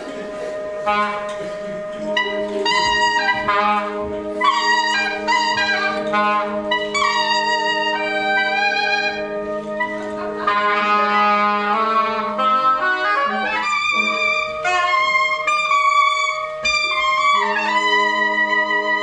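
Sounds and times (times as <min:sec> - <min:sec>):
wind quintet chamber music: 0:00.0 - 0:19.0.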